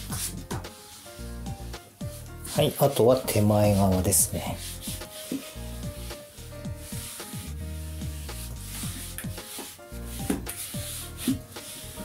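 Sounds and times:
background music with beat: 0.0s - 12.0s
paper towel wiping floor tiles: 0.0s - 12.0s.

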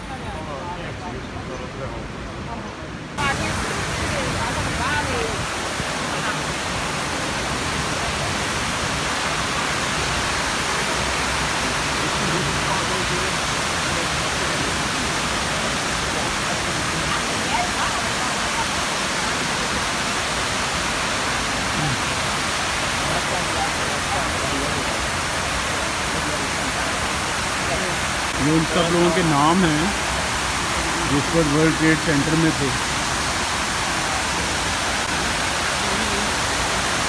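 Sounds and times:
waterfall rushing into a basin: 3.2s - 37.0s.

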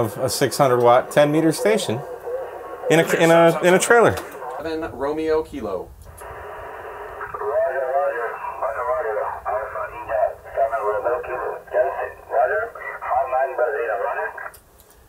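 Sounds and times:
voice over radio loudspeaker: 0.0s - 5.2s, 6.2s - 14.5s
radio static hiss: 0.0s - 14.7s.

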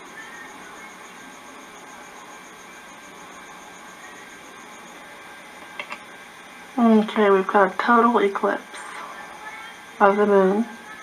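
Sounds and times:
faint pulsing high tone: 0.0s - 5.4s
tape hiss: 0.0s - 11.0s.

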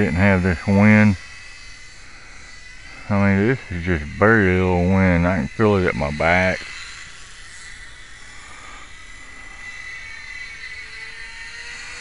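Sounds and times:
model airplane motor whine: 0.0s - 12.0s.

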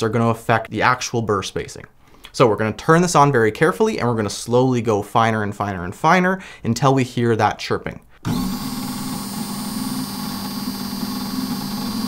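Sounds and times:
coffee grinder motor humming: 8.2s - 12.0s.

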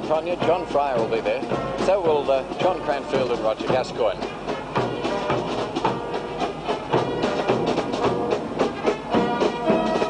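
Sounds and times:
brass band music: 0.0s - 10.0s
steady drum beat: 0.0s - 10.0s.

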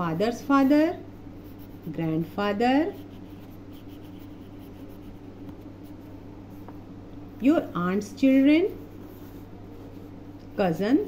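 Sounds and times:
steady low hum: 0.0s - 11.0s
pencil scratching on paper: 0.1s - 6.2s.

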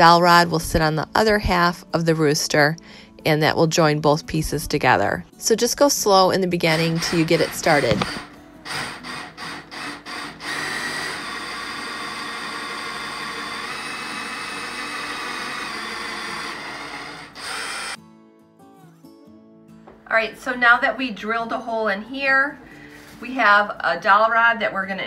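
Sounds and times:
cordless drill boring wood: 6.7s - 18.0s.

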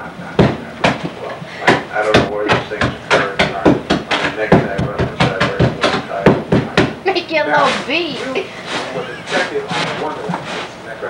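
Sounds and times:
voices talking: 0.0s - 11.0s
tool knocking on floor: 0.4s - 7.0s.

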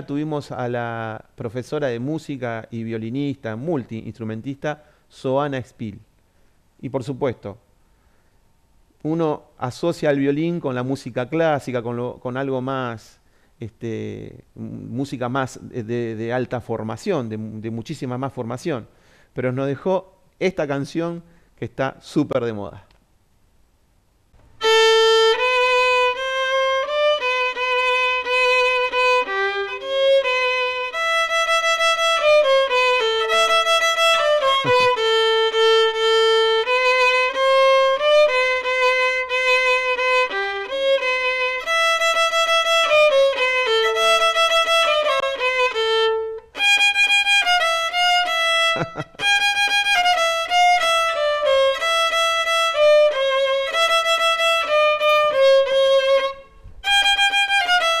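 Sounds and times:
solo violin melody: 24.4s - 58.0s.

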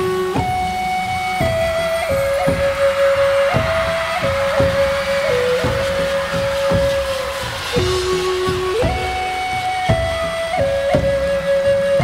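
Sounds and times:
panpipe melody: 0.0s - 12.0s
rhythmic accompaniment: 0.0s - 12.0s.

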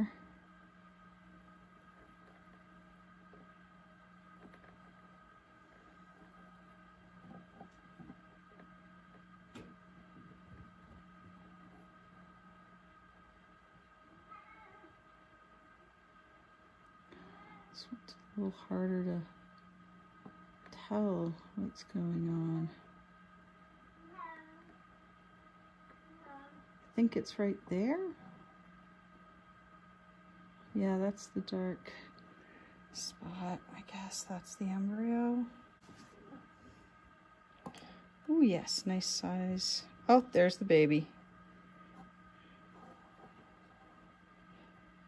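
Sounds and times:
faint steady hum: 0.0s - 45.0s.

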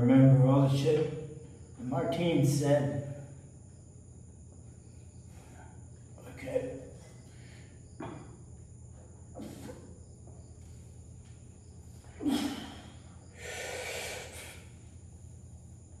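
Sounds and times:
man breathing hard: 12.2s - 14.9s.

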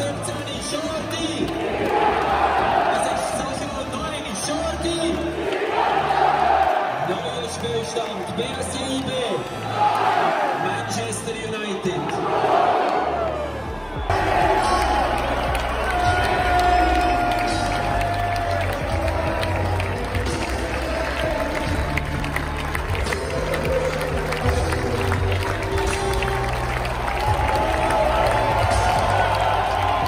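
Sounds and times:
crowd clapping: 0.0s - 30.0s
music over the stands: 0.0s - 30.0s
stadium crowd cheering: 0.0s - 30.0s
crowd singing: 14.0s - 28.7s.

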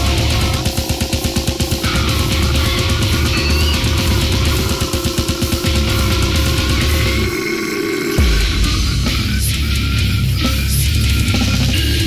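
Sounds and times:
death metal band: 0.0s - 12.0s
deep guttural vocal: 1.8s - 12.0s.

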